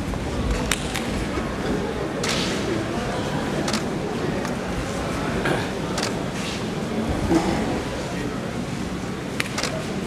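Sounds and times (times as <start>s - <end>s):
murmur of large hall: 0.0s - 10.0s.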